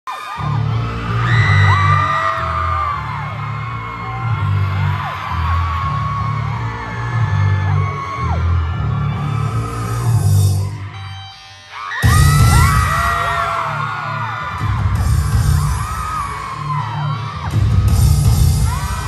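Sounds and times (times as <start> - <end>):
fans screaming and cheering: 0.0 - 19.0.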